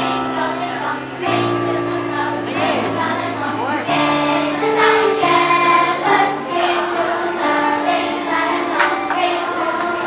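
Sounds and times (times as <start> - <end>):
children's choir singing: 0.0 - 10.0
instrumental accompaniment: 0.0 - 10.0.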